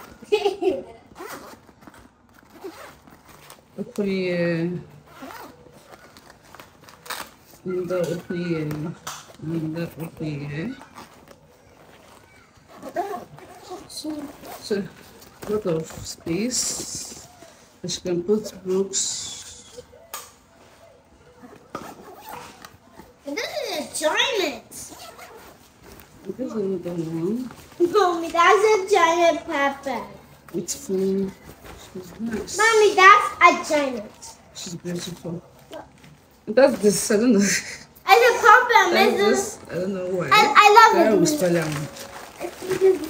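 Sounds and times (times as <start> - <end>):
zipper being pulled open: 1.1 - 3.9, 4.9 - 7.5, 12.0 - 15.9, 21.7 - 22.8, 24.9 - 25.7
backpack fabric rustling: 1.1 - 17.8, 20.6 - 24.0, 24.9 - 36.8, 38.1 - 43.0.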